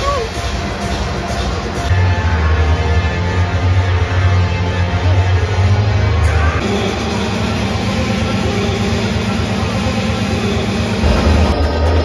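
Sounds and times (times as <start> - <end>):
music with heavy bass: 0.0 - 12.0.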